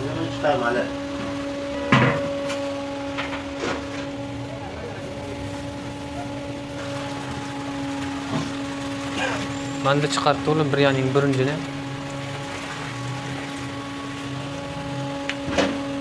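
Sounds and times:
steady hum: 0.0s - 16.0s.

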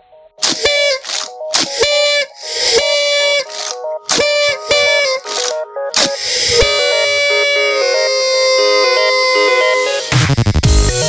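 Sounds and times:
hissing blasts with whistle tone: 0.4s - 3.7s, 6.2s - 10.2s
beeping electronic melody: 0.6s - 10.4s.

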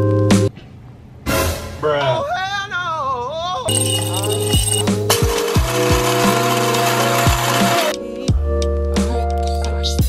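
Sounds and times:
electric coffee grinder running: 5.1s - 8.0s.

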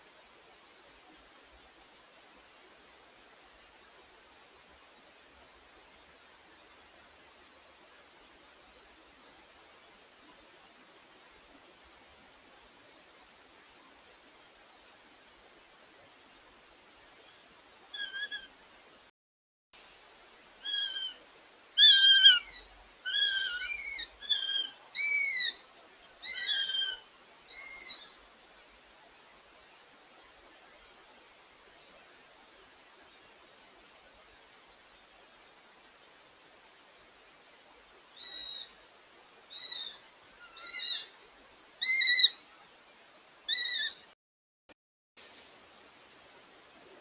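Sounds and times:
hawk whistled cries: 18.0s - 18.6s, 20.6s - 21.2s, 21.8s - 25.6s, 26.2s - 28.2s, 38.2s - 38.8s, 39.5s - 41.2s, 41.8s - 42.4s, 43.5s - 44.1s.

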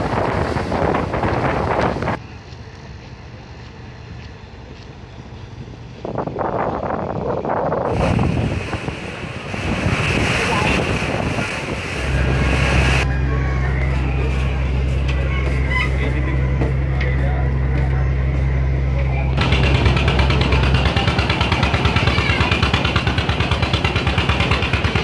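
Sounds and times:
wind buffeting microphone: 0.0s - 2.2s, 5.5s - 13.1s
boat diesel engine drone: 0.0s - 25.0s.

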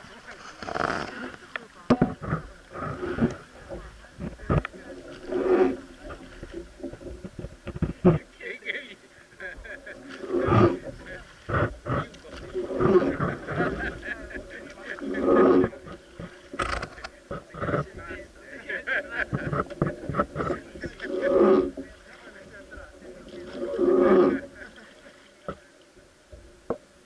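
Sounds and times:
faint voices: 0.0s - 26.3s.

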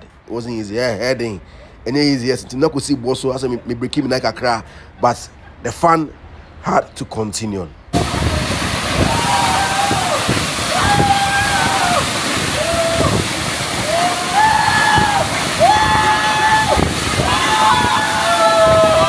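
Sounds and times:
waterfall pouring into pool: 8.0s - 19.0s
men shouting: 9.0s - 19.0s.

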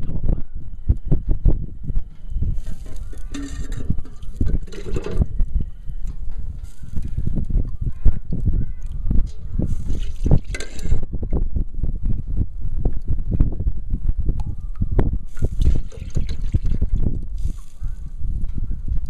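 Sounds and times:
liquid bubbling in a pot: 2.8s - 5.6s, 15.3s - 17.2s.

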